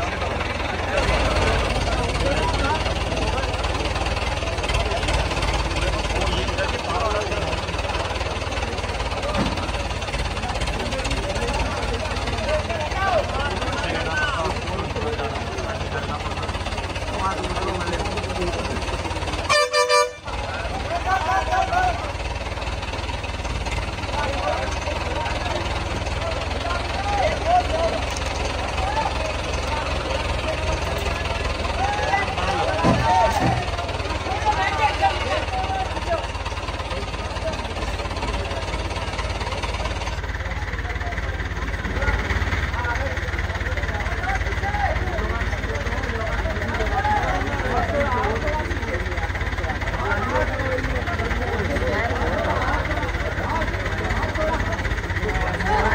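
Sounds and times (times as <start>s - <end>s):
crowd talking and calling out: 0.0s - 55.9s.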